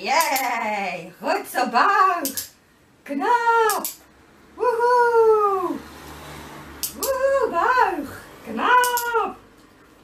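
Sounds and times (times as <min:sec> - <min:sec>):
sharp click: 0:02.2 - 0:02.6, 0:03.7 - 0:04.0, 0:06.8 - 0:07.2, 0:08.8 - 0:09.2
woman calling to a dog: 0:03.1 - 0:04.0, 0:07.0 - 0:09.4.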